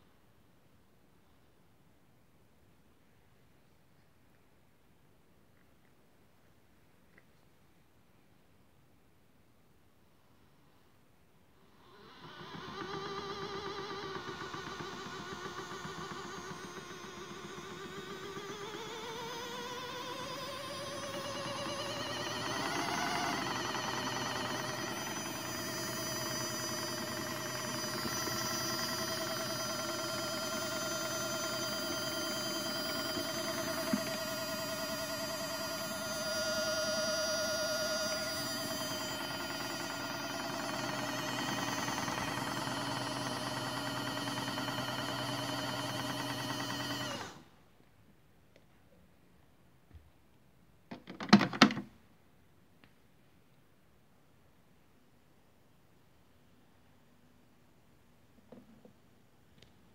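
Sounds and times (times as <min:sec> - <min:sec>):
small electric motor whining: 0:11.7 - 0:47.5.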